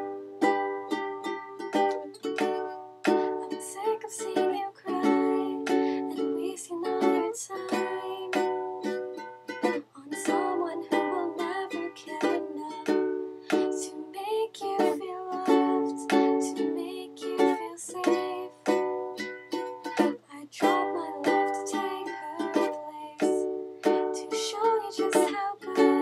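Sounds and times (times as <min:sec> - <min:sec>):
ukulele strummed: 0:00.0 - 0:26.0
woman singing softly: 0:00.8 - 0:08.9, 0:09.9 - 0:18.9, 0:20.0 - 0:26.0.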